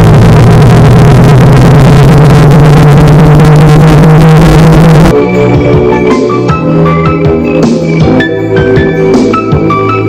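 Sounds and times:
distorted synthetic drone: 0.0s - 6.0s.

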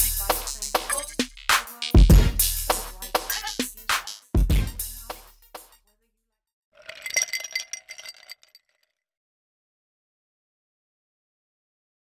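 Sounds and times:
glass clinking: 6.8s - 8.8s.

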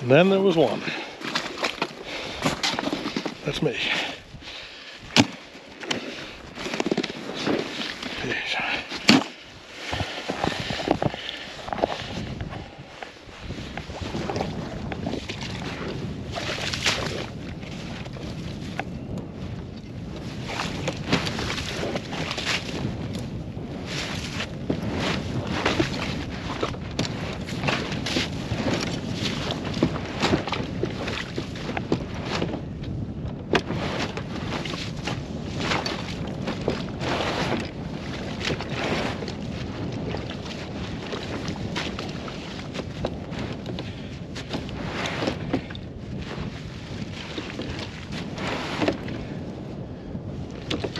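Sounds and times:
snow crunching and scraping: 0.0s - 18.7s, 19.4s - 32.5s, 33.7s - 49.4s.

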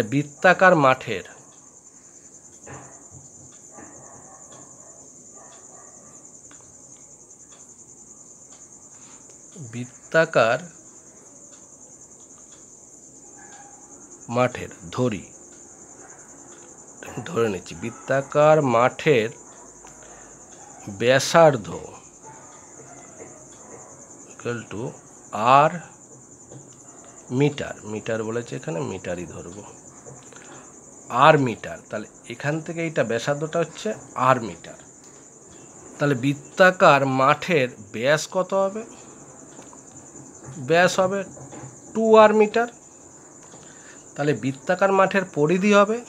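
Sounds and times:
person speaking: 0.0s - 1.4s, 9.6s - 10.7s, 14.3s - 15.3s, 17.0s - 19.4s, 20.8s - 22.1s, 24.3s - 25.9s, 27.3s - 29.8s, 31.1s - 34.8s, 36.0s - 39.0s, 40.6s - 41.3s, 41.9s - 42.8s, 44.2s - 46.0s
cricket trilling: 0.0s - 46.0s.

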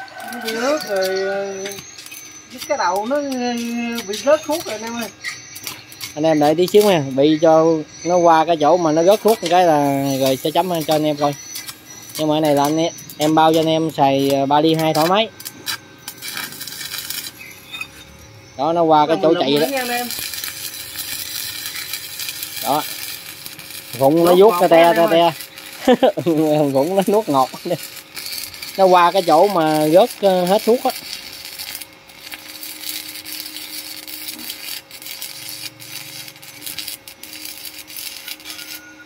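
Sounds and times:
welding arc crackling: 0.0s - 39.0s.

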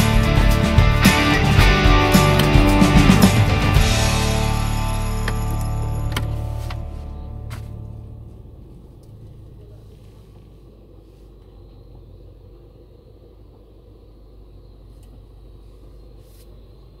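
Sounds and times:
car engine idling: 0.0s - 17.0s.

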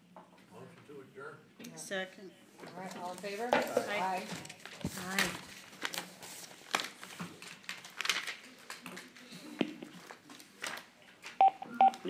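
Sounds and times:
telephone keypad tones: 11.4s - 12.0s.

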